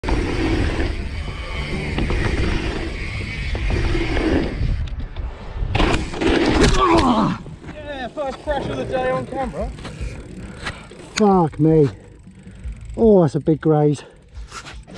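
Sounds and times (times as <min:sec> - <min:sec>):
bike tyres rolling on dirt: 0:00.0 - 0:14.9
bike crashing into ground: 0:05.7 - 0:07.4
pained cry: 0:06.7 - 0:07.5.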